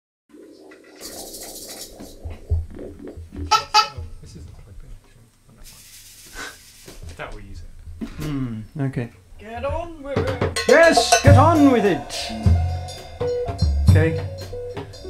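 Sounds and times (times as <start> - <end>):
high hiss: 0.3 - 4.4, 5.5 - 7.5, 10.7 - 13.2
scattered instrument sounds: 0.3 - 4.4, 10.1 - 14.1
voices: 7.1 - 12.5.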